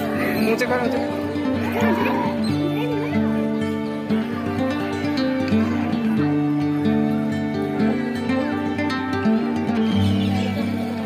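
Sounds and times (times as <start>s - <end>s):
music with long held notes: 0.0s - 11.0s.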